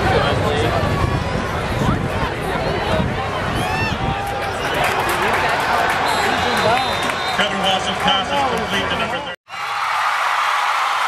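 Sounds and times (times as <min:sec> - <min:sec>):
crowd chatter: 0:00.0 - 0:09.4.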